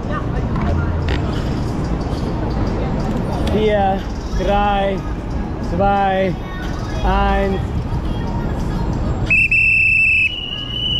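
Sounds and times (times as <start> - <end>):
traffic rumble: 0.0 - 10.9.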